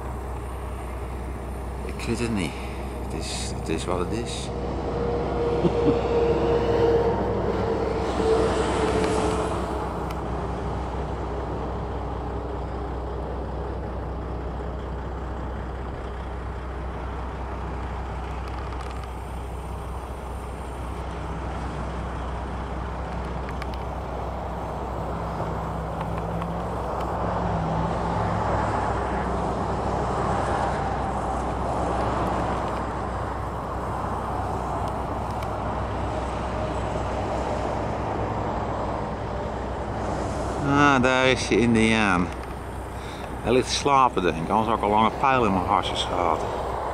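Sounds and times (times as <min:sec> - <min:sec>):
road noise: 0:00.0 - 0:46.9
vehicle engine drone: 0:00.0 - 0:46.9.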